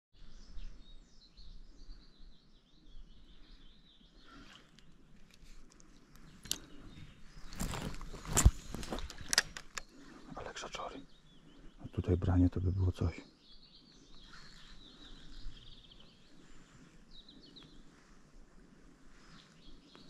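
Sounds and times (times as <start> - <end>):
outdoor background noise: 0.1 - 20.0
small bird chirping: 0.2 - 18.0.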